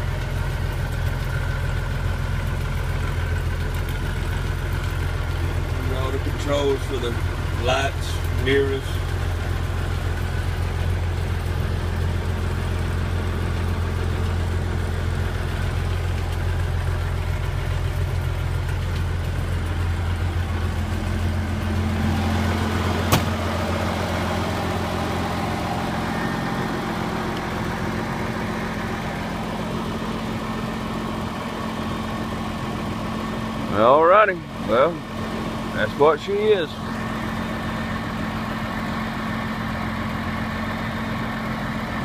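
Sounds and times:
diesel truck engine idling: 0.0s - 42.0s.

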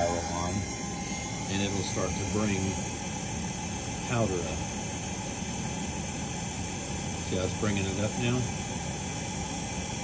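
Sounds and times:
powder shaker machine running: 0.0s - 10.0s.

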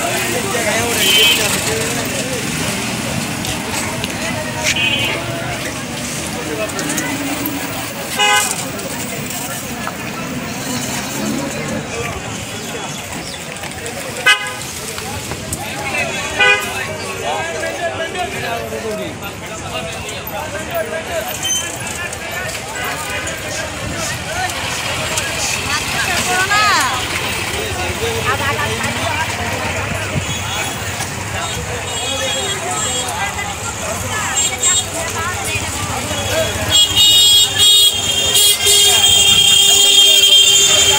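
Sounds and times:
motor vehicles running: 0.0s - 40.9s
people talking: 0.0s - 40.9s
people's voices: 0.0s - 40.9s
street traffic: 0.0s - 40.9s
vehicle horn honk: 1.0s - 1.6s, 8.2s - 8.6s, 14.2s - 14.6s, 16.4s - 16.7s, 36.4s - 40.9s.

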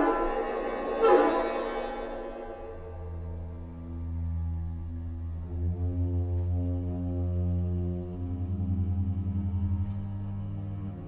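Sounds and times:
western film score music: 0.0s - 11.0s.

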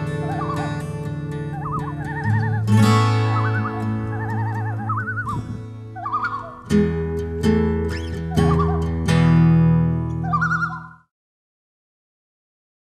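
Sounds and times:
acoustic guitar music: 0.0s - 10.9s.

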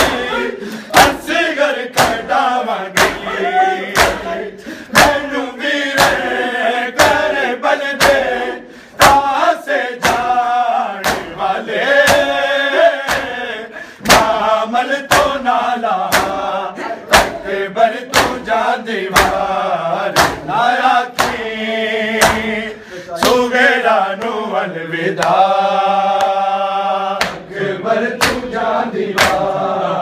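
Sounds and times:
palms slapping bare chests: 0.0s - 7.4s, 8.0s - 21.6s, 22.2s - 23.6s, 27.2s - 27.5s, 28.2s - 28.6s, 29.2s - 29.6s
men chanting in unison: 0.0s - 30.0s.

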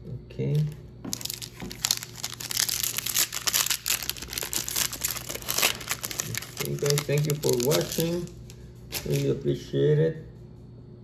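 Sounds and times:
foil wrapper crinkling: 0.6s - 9.6s.

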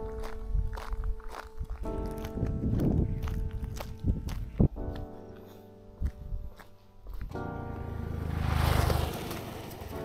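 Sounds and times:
footsteps on road: 0.0s - 10.0s
music with sustained chords: 0.0s - 10.0s.

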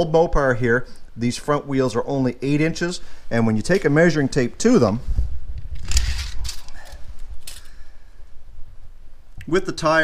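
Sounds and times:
microphone handling rumble: 5.0s - 7.5s
metal tape measure rattling scrapes: 5.8s - 7.8s.

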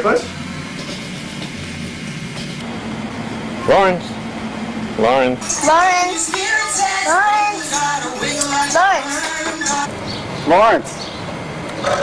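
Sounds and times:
low hum: 0.0s - 10.3s.

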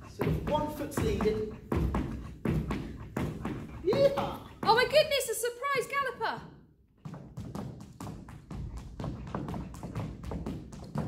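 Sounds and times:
footfalls on wooden floor: 0.0s - 5.1s, 7.0s - 11.0s.

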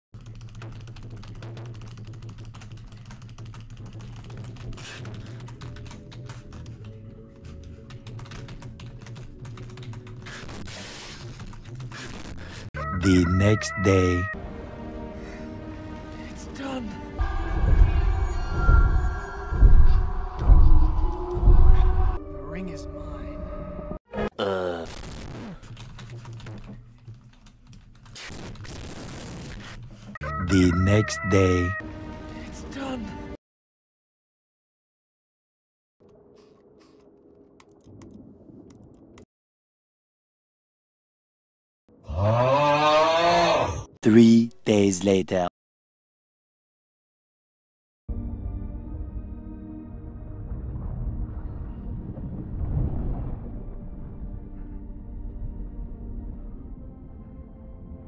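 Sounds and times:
fast keyboard typing: 0.2s - 12.4s, 25.6s - 28.6s
music: 0.3s - 10.6s, 13.7s - 24.0s, 30.2s - 33.4s, 48.1s - 58.0s.

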